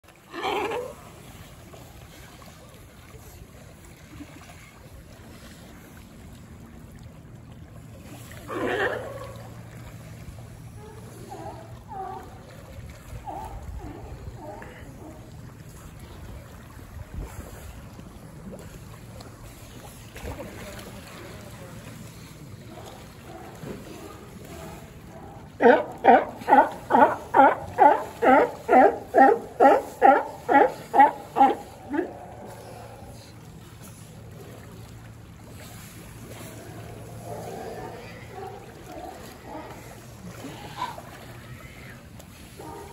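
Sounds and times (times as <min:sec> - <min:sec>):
sea water noise: 0:00.0 - 0:42.9.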